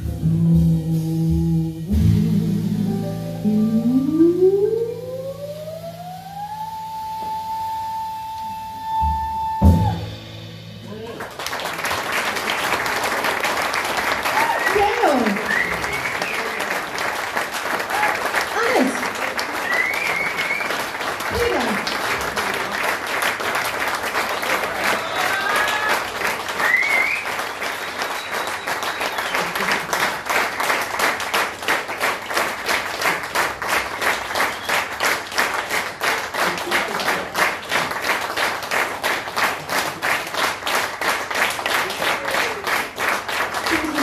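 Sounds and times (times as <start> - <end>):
rhythmic clapping in unison: 10.8 - 44.0
people cheering: 10.9 - 31.3, 32.0 - 44.0
audience applause: 10.9 - 44.0.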